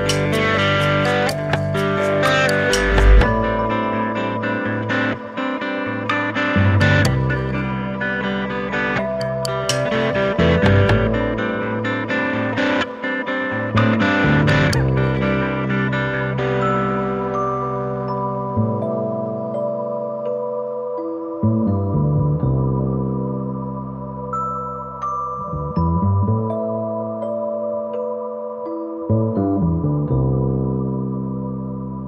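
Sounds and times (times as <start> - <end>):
plucked guitar music: 0.0 - 19.2.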